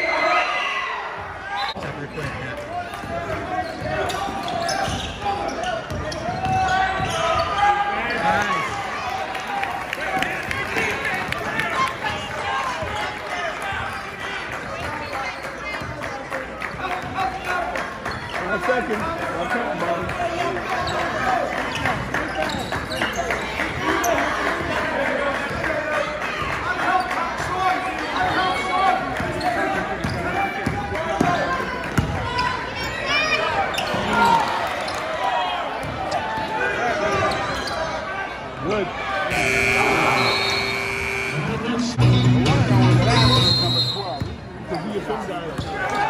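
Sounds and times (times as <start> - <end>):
spectators' voices and shouts: 0.0 - 46.0
steady held tone: 39.3 - 42.0.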